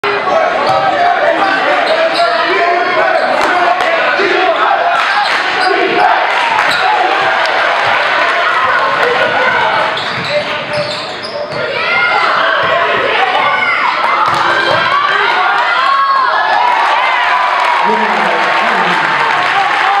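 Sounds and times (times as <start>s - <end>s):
crowd voices and shouts: 0.0s - 20.0s.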